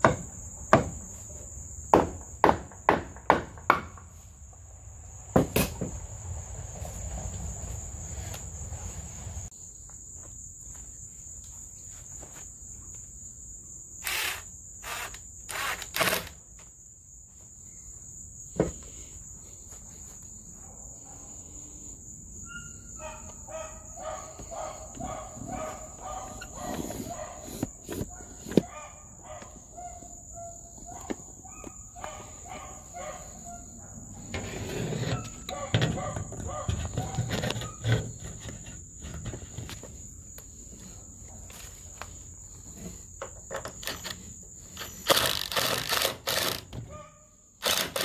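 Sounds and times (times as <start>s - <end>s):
crickets chirring: 0.0s - 48.0s
cordless drill driving screws: 14.0s - 16.4s, 44.9s - 46.8s, 47.6s - 48.0s.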